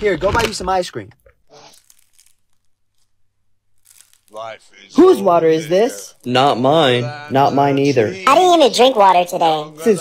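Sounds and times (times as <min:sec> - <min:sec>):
soft crinkles: 0:00.1 - 0:04.9.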